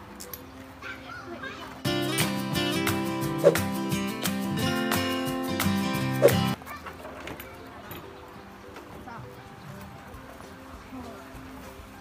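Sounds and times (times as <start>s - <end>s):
faint children's voices: 0.6s - 1.9s, 6.5s - 12.0s
music: 1.8s - 12.0s.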